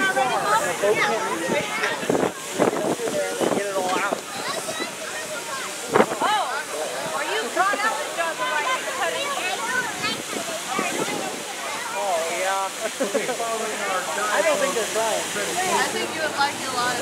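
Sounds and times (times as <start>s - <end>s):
people chattering: 0.0s - 17.0s.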